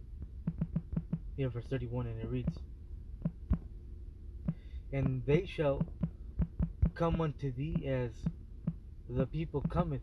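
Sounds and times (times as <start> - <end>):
short dull thumps: 0.0 - 1.4, 2.3 - 3.7, 4.4 - 10.0
steady low rumble: 0.0 - 10.0.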